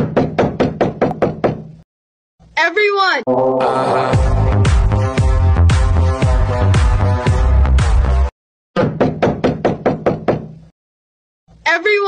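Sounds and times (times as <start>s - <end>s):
background music: 3.3s - 8.3s.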